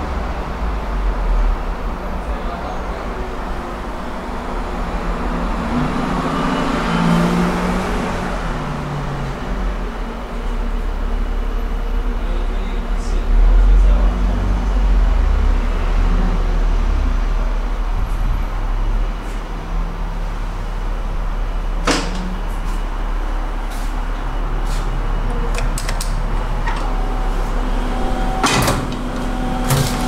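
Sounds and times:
heavy deep rumble: 0:00.0 - 0:30.0
road traffic rumble: 0:00.0 - 0:30.0
vehicle passing: 0:03.1 - 0:09.9.

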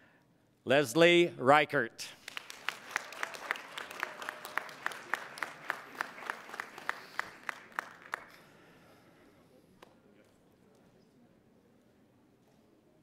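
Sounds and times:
audience applauding: 0:02.2 - 0:08.7
close hands clapping steadily: 0:02.2 - 0:08.8.

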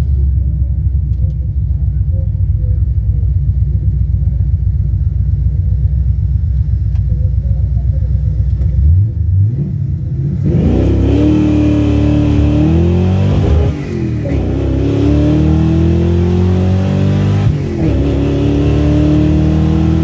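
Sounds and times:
car engine revving: 0:07.8 - 0:20.0.

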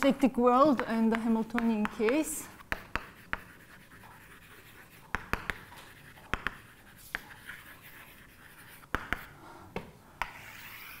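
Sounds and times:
chalk tapping on blackboard: 0:00.7 - 0:11.0
chalk scratching: 0:01.1 - 0:09.4, 0:10.2 - 0:11.0.

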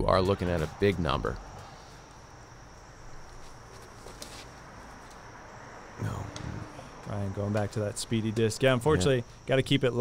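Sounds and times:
high-pitched insect drone: 0:05.3 - 0:10.0.

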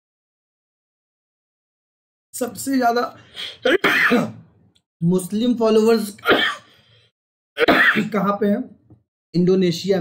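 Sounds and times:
man speaking roughly: 0:07.6 - 0:08.8.

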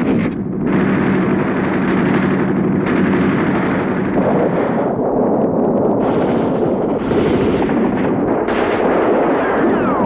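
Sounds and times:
explosions: 0:00.0 - 0:05.0, 0:06.0 - 0:10.0
continuous gunfire: 0:00.0 - 0:05.2, 0:05.9 - 0:10.0.

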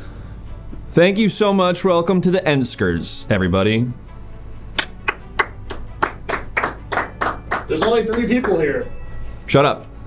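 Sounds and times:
sparse hand clapping: 0:04.8 - 0:08.6.

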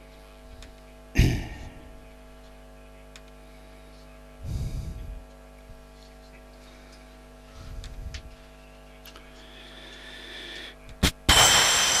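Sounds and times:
electrical hum: 0:00.0 - 0:12.0
faint muffled rumble: 0:00.5 - 0:10.0
loud burst of static: 0:11.0 - 0:12.0.

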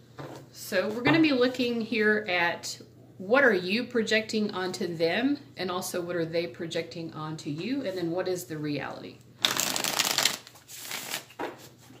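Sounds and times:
cards being shuffled: 0:09.4 - 0:11.8.

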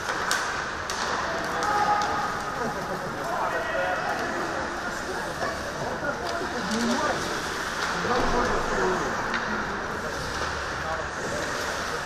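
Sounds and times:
skates scraping ice: 0:00.0 - 0:12.0.

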